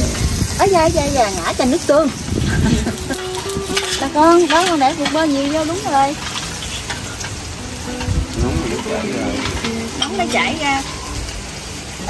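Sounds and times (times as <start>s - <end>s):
butter sizzling in a pan: 0.0s - 12.0s.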